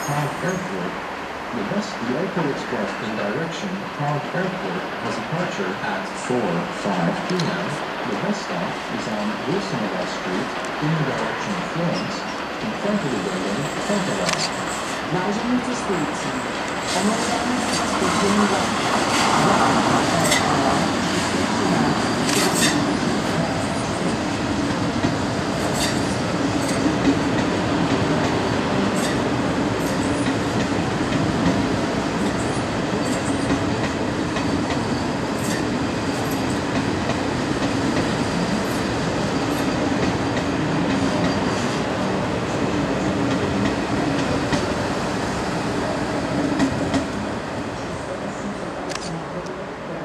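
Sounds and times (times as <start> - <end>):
electric train rumbling past: 0.0 - 48.9.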